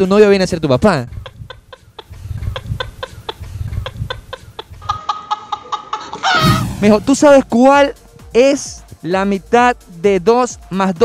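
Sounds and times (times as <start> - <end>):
low pulsing beat: 1.1 - 4.9
short sharp comic calls: 6.2 - 7.0.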